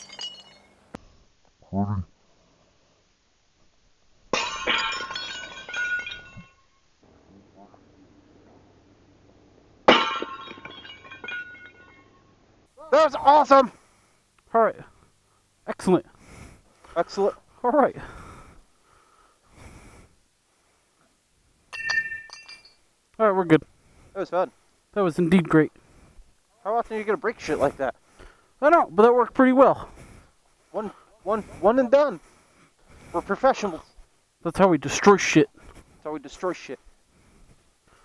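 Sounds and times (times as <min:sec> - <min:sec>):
ceramic pot smashing: 0:00.0 - 0:00.8, 0:04.3 - 0:06.7, 0:09.8 - 0:12.2, 0:21.7 - 0:22.8
ceramic pieces clinking and scattering: 0:00.0 - 0:00.9, 0:04.4 - 0:06.8, 0:09.9 - 0:12.3, 0:21.7 - 0:22.8.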